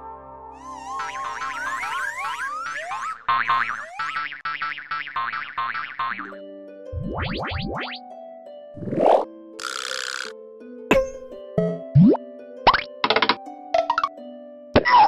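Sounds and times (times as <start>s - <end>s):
cartoon music: 0.5s - 6.4s, 7.0s - 8.0s, 10.9s - 14.2s
rising boing-like glides: 0.7s - 4.4s
wobbling warble: 0.7s - 4.4s.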